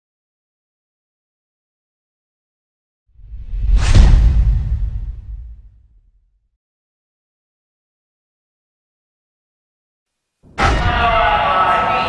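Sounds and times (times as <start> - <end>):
deep low boom: 3.2 - 6.3
whoosh: 3.2 - 6.3.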